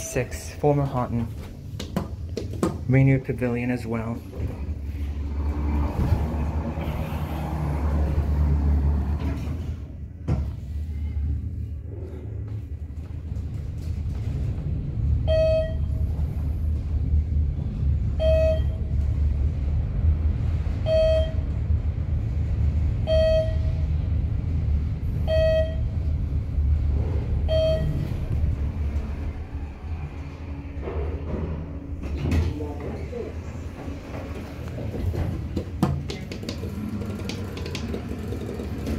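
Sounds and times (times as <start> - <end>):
elevator car rumble: 0.0 - 38.9
short electronic beep: 15.3 - 16.0, 18.2 - 18.8, 23.1 - 23.8, 27.5 - 28.1.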